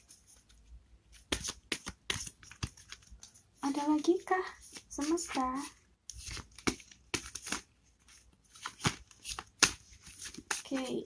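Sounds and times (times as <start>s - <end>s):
cards being shuffled: 1.2s - 11.0s.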